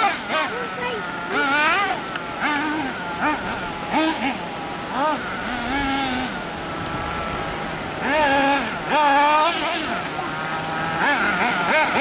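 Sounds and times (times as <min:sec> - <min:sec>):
small engine revving: 0:00.0 - 0:12.0.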